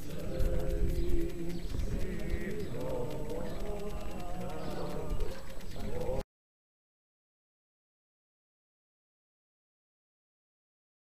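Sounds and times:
group singing a hymn: 0.0s - 6.2s.

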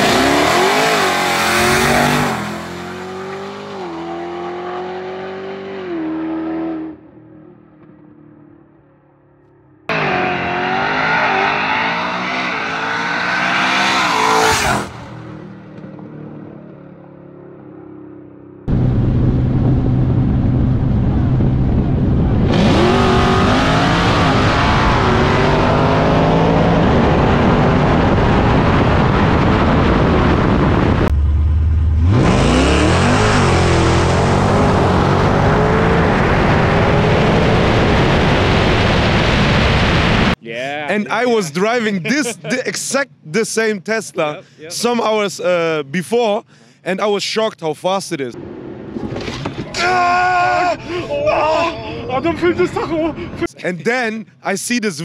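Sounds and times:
cars accelerating hard: 0.0s - 7.2s, 9.9s - 16.5s, 18.7s - 40.4s.

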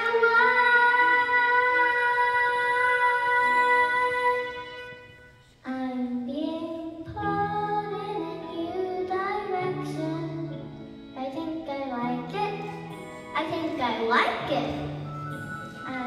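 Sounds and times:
girl singing into a microphone: 0.0s - 16.0s
instrumental accompaniment: 6.9s - 16.0s.

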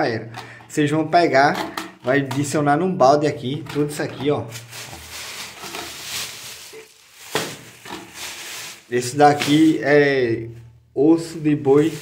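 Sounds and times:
plastic bag rustling: 4.0s - 10.0s, 11.6s - 12.0s.

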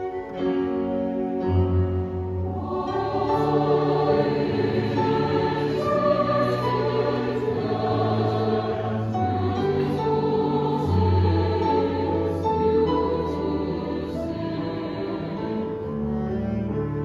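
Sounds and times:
cello: 0.0s - 17.0s
piano: 0.0s - 17.0s
choir singing: 1.6s - 16.8s.

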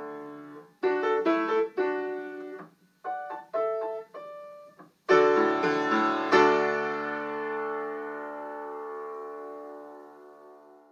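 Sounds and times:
piano chord ringing: 0.0s - 10.9s.

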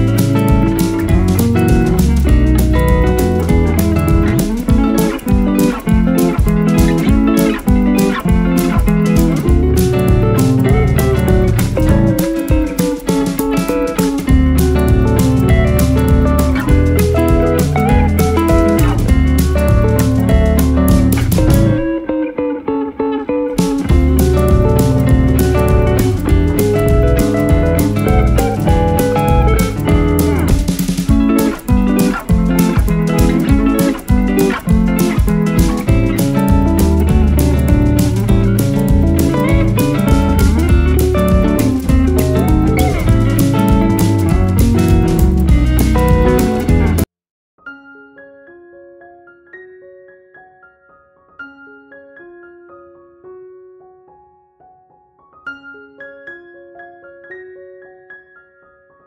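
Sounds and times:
guitar instrumental music: 0.0s - 58.5s.

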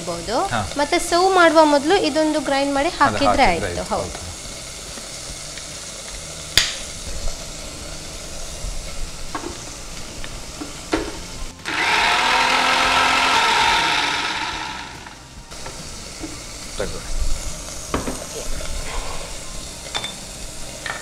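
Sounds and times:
electric mixer grinder running: 0.0s - 15.9s.

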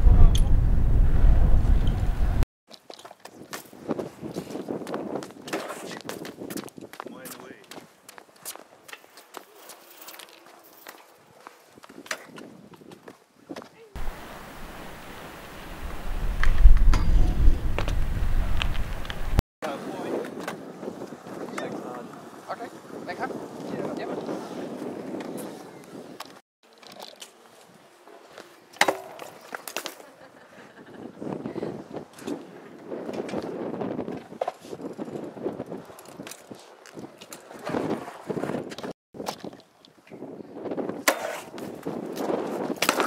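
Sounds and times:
people talking: 0.0s - 0.6s, 7.1s - 7.7s, 21.5s - 24.3s
bike tyres rolling on concrete: 0.0s - 14.2s, 15.5s - 39.9s.

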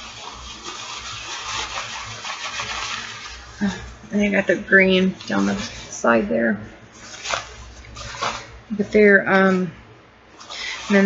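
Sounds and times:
nylon pants rustling: 7.0s - 8.6s.

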